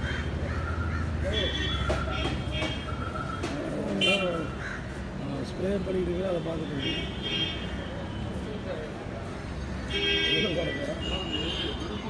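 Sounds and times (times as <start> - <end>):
crows cawing: 0.0 - 2.1, 4.4 - 5.2.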